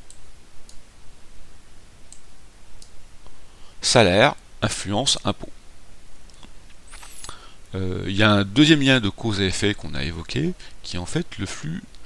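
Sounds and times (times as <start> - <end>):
computer mouse clicking: 2.1 - 3.0.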